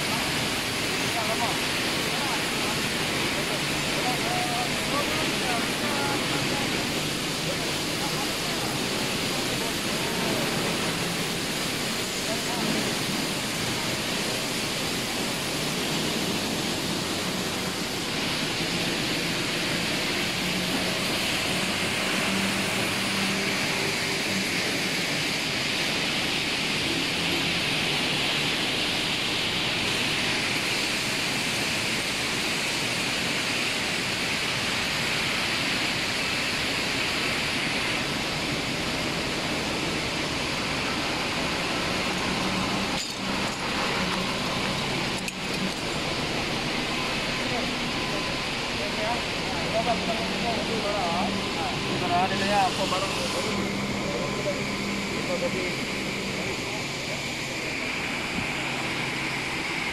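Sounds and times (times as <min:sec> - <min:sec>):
continuous machinery hiss: 0:00.0 - 0:59.9.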